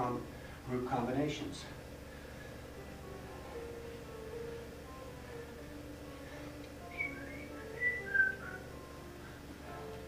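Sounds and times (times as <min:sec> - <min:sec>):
quiet background music: 0:00.0 - 0:10.0
person whistling: 0:06.8 - 0:08.7.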